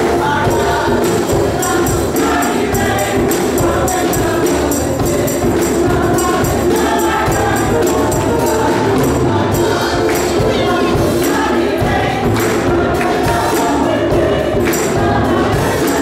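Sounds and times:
gospel choir singing: 0.0 - 16.0
tambourine beat: 0.0 - 16.0.

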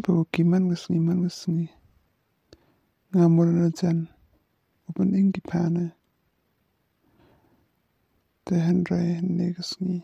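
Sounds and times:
person speaking: 0.0 - 1.8, 3.1 - 4.2, 4.8 - 6.1, 8.4 - 10.0
faint click: 2.5 - 2.7.

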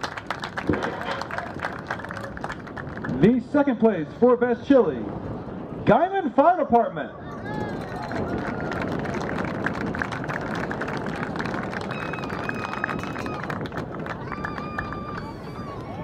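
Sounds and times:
crowd clapping: 0.0 - 3.4, 7.7 - 15.9.

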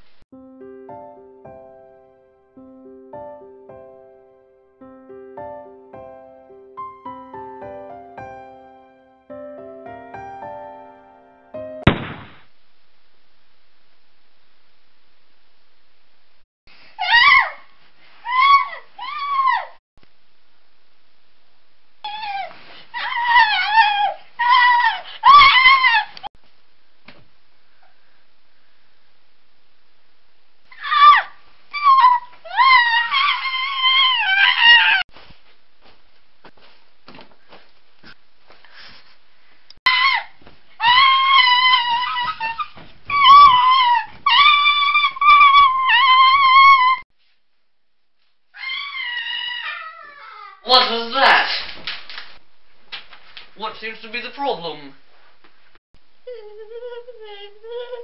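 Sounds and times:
creature squeals sliding down: 30.7 - 35.0, 39.9 - 47.0, 48.6 - 50.6.

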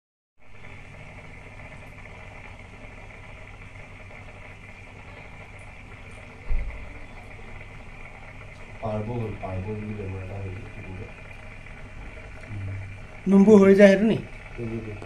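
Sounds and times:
aquarium pump humming: 0.4 - 15.0.

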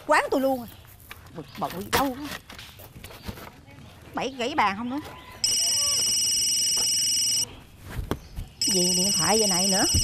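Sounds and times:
phone ringing: 5.4 - 7.4, 8.6 - 10.0.

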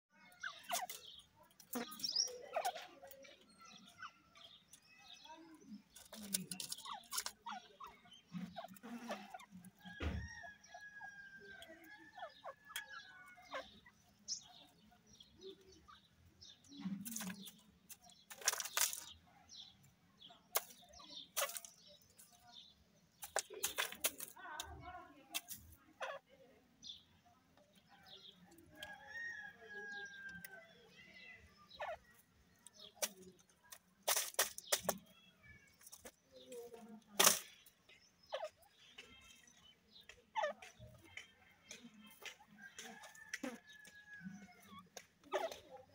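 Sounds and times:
birds rustling: 0.3 - 45.9.

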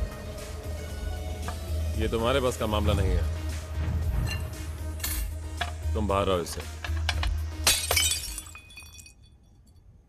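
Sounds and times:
glass shattering: 7.6 - 9.4
glass pieces tinkling: 7.6 - 9.8.

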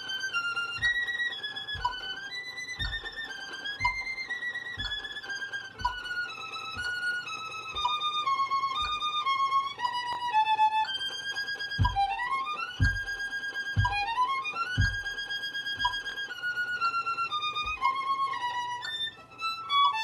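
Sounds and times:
solo violin melody: 0.0 - 20.0
soft low thump: 11.8 - 12.2, 12.8 - 13.2, 13.8 - 14.2, 14.8 - 15.2.

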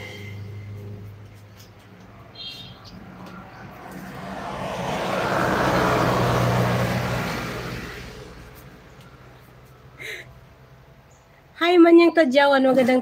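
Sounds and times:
vehicle passing by: 0.0 - 10.0.

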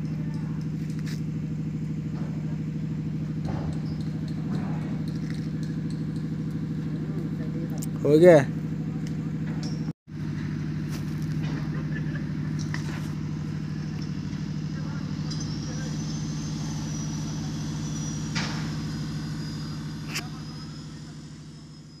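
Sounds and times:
low machine hum: 0.0 - 22.0
faint high whistle: 14.2 - 22.0.

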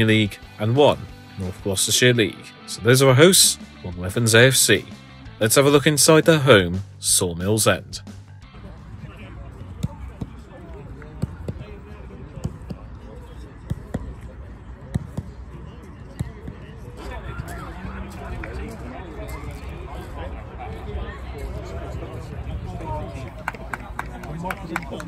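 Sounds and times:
nearby chatter: 8.6 - 25.0
footballs kicked thuds: 14.8 - 15.4.

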